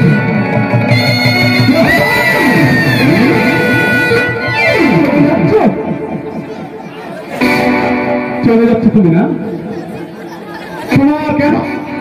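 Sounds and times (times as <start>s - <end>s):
live accompaniment music: 0.0s - 12.0s.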